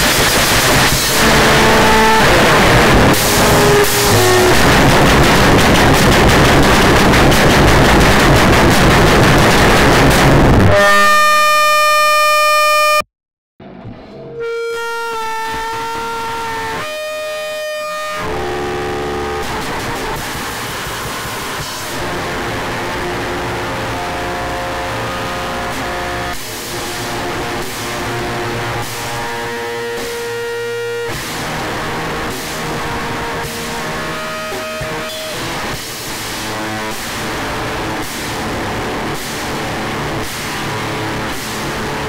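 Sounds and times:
steady noisy texture: 0:00.0 - 0:12.1, 0:13.6 - 0:42.0
heavy distorted band music: 0:00.0 - 0:13.0, 0:13.6 - 0:42.0
droning tones: 0:00.5 - 0:13.0, 0:13.6 - 0:42.0
held tone with overtones: 0:01.0 - 0:13.0, 0:13.7 - 0:19.4.

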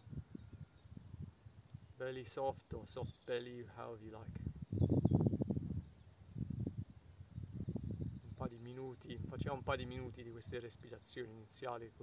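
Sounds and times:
faint bird chirps: 0:00.0 - 0:11.9.

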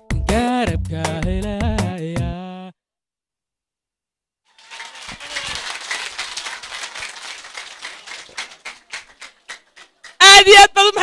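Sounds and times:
audience applauding: 0:04.5 - 0:10.3.

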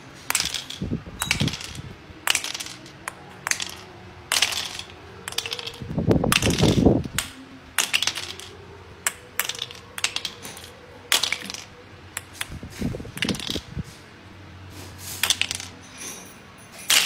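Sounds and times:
plastic blocks clattering on glass: 0:00.2 - 0:13.7, 0:15.2 - 0:17.0
plastic mallet tapping plastic blocks: 0:00.3 - 0:13.6.

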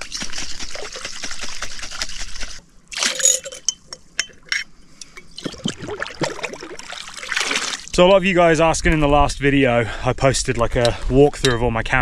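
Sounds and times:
water splashing in glass jar: 0:02.9 - 0:04.4, 0:05.4 - 0:07.9
clinks against glass: 0:03.2 - 0:04.7.

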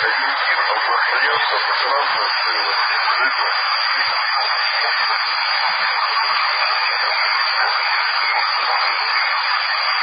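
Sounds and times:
faint garbled radio voices: 0:00.0 - 0:10.0
radio static hiss: 0:00.0 - 0:10.0.

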